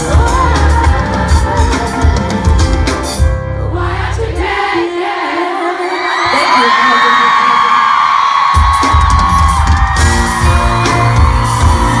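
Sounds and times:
person singing: 0.0s - 3.2s
live pop band: 0.0s - 12.0s
fans screaming and whooping: 5.8s - 12.0s.

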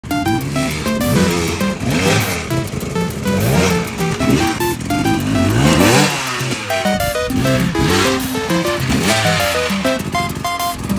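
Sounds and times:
bouncy video game music: 0.0s - 10.9s
dirt bike engine revving: 0.3s - 10.9s.

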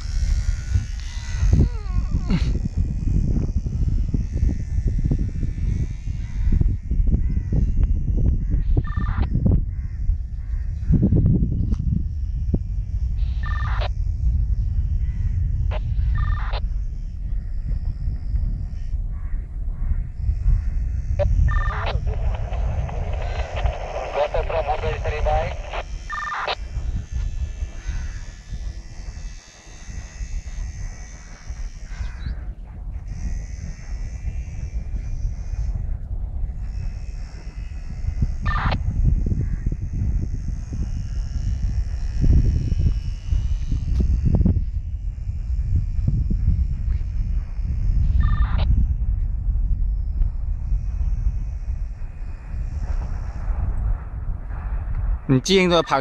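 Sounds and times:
model plane motor whine: 0.0s - 24.2s, 24.8s - 56.0s
wind buffeting microphone: 0.0s - 56.0s.

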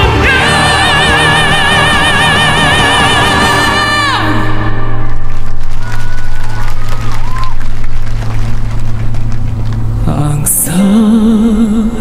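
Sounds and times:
audience cheering and applauding: 0.0s - 10.0s.

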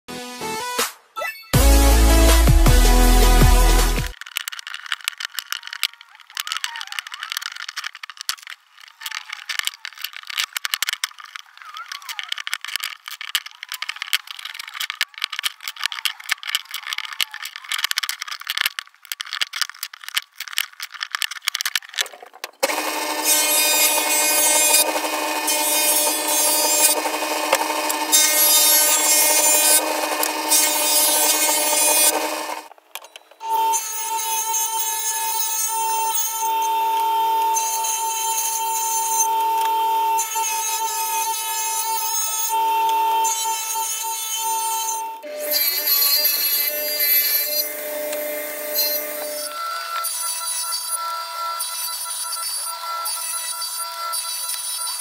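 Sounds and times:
table saw ripping wood: 1.6s - 5.7s, 19.7s - 32.8s, 33.4s - 55.0s
wooden strips clattering: 4.1s - 33.4s.

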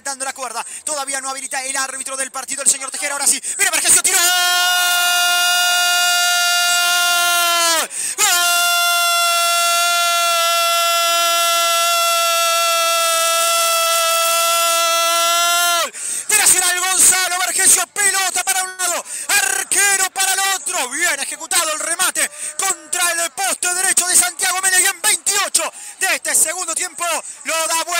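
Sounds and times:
rapid excited shouting: 2.8s - 27.9s
commentator screaming goal: 3.7s - 27.9s.

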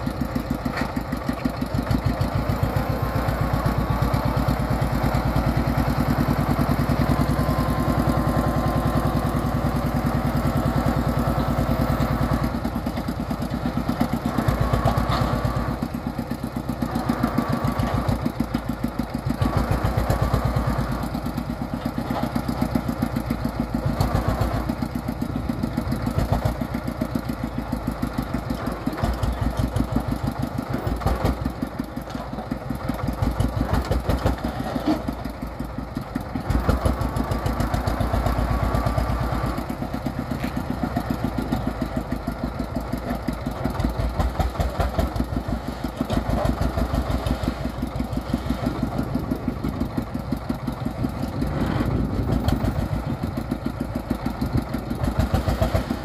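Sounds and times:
diesel engine knocking: 0.0s - 56.0s.

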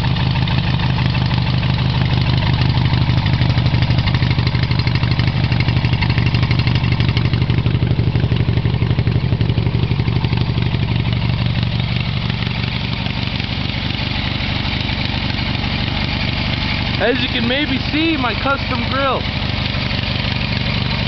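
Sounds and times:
loud engine exhaust: 0.0s - 21.0s.

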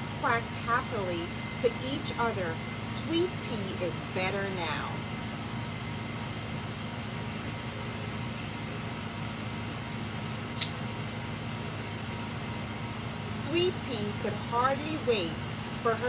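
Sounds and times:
machine hum with high hiss: 0.0s - 16.0s
short sharp click: 10.6s - 10.8s.

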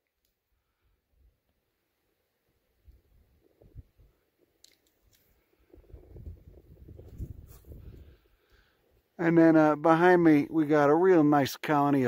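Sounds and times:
branches rubbing near microphone: 5.8s - 8.1s.

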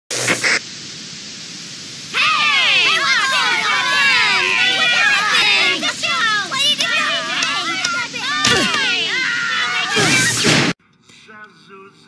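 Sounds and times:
television static hiss: 0.1s - 12.0s.

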